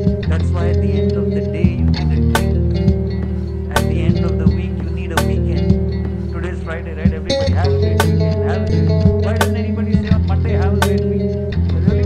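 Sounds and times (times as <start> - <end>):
hip-hop beat with bass: 0.0 - 12.0.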